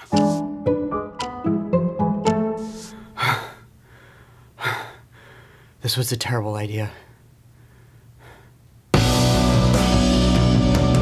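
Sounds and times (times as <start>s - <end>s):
man breathing out heavily: 2.6s - 5.8s.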